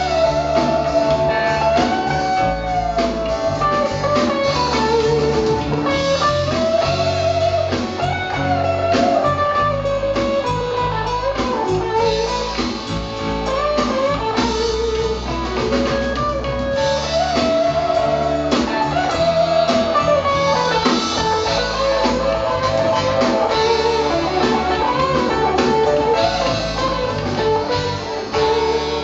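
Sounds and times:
bass guitar: 0:00.0 - 0:29.0
drums: 0:00.0 - 0:29.0
electric guitar solo: 0:00.0 - 0:29.0.

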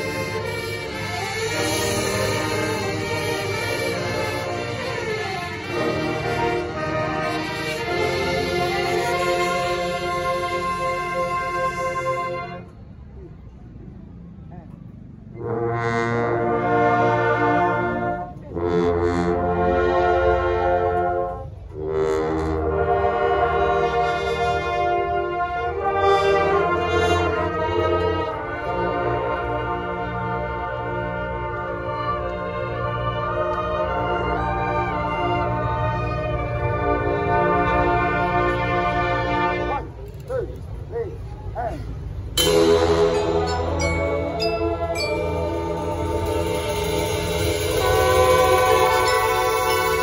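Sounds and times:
brass bugles holding a chord: 0:00.0 - 0:12.7, 0:15.4 - 0:39.9, 0:42.3 - 0:50.0.

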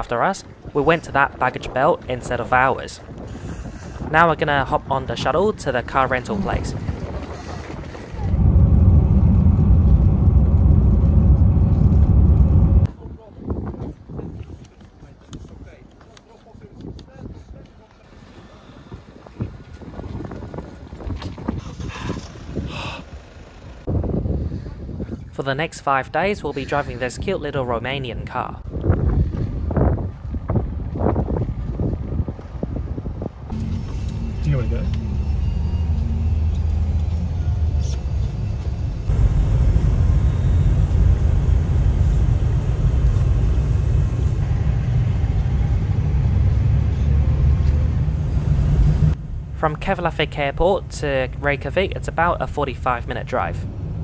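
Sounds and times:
wind buffeting microphone: 0:00.0 - 0:25.4, 0:28.5 - 0:49.6, 0:50.4 - 0:54.0
car engine rumble: 0:07.8 - 0:12.9, 0:19.5 - 0:24.5, 0:28.8 - 0:54.0
tyres on road: 0:17.6 - 0:24.8, 0:26.1 - 0:54.0.

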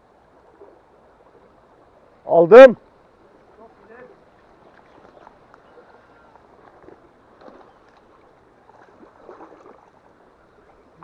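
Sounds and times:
faint creek water: 0:00.0 - 0:11.0
light splashes and knocks: 0:06.5 - 0:10.0.

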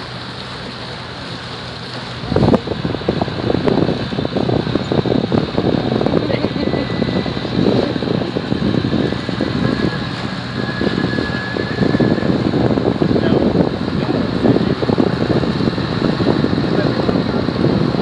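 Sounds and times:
boat engine droning: 0:00.0 - 0:18.0
wind buffeting microphone: 0:00.0 - 0:18.0.

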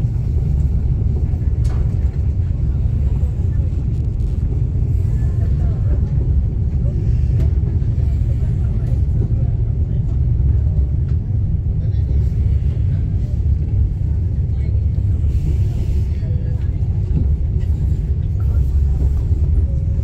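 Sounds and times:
train rumbling in motion: 0:00.0 - 0:20.0.

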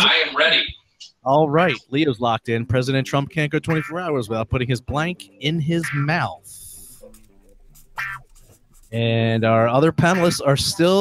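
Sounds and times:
pen scratching on paper: 0:07.0 - 0:09.0.

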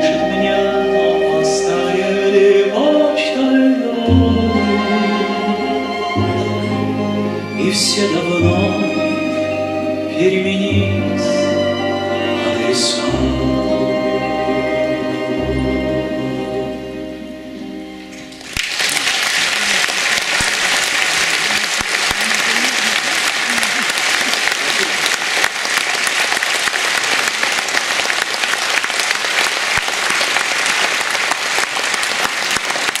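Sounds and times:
audience applause: 0:18.1 - 0:33.0.

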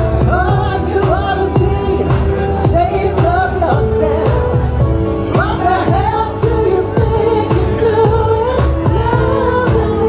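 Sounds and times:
person singing into a microphone: 0:00.0 - 0:10.0
pop accompaniment with steady beat: 0:00.0 - 0:10.0.

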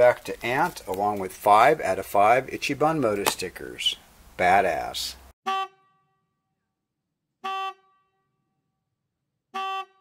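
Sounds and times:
horn toots: 0:05.4 - 0:06.2, 0:07.4 - 0:08.3, 0:09.5 - 0:10.0.

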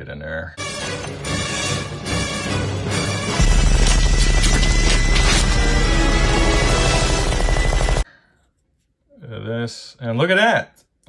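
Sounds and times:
dramatic soundtrack music: 0:00.6 - 0:08.0.

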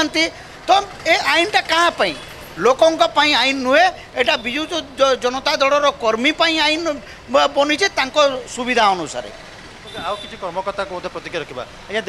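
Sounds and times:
man speaking: 0:00.0 - 0:12.0
street traffic: 0:00.0 - 0:12.0.

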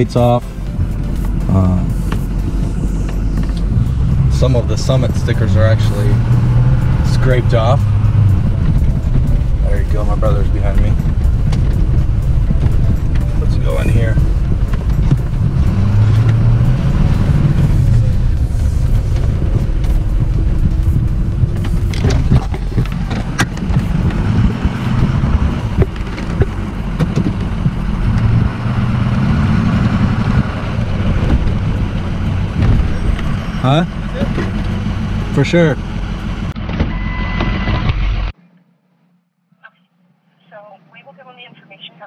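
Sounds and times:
engine and road drone: 0:00.0 - 0:39.2.

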